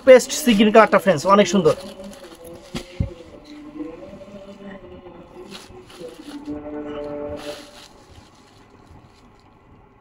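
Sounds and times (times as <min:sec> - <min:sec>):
fabric rustling: 0:00.0 - 0:10.0
horn-like pitched tone: 0:01.2 - 0:08.2.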